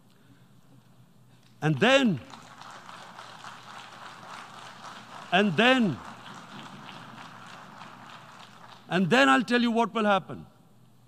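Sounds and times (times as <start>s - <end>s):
faint steady room hiss: 0.0s - 11.0s.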